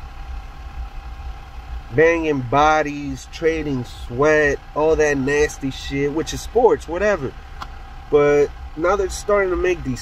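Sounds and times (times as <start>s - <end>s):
car engine rumble inside cabin: 0.0s - 10.0s.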